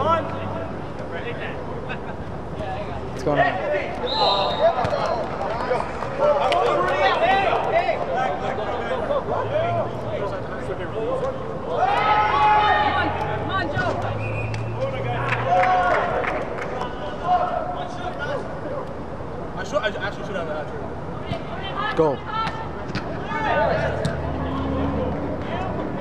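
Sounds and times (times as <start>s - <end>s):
players and spectators calling: 0.0s - 19.1s, 21.2s - 26.0s.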